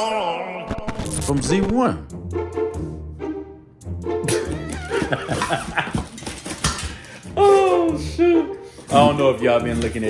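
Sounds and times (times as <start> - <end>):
man laughing: 4.2 - 6.1.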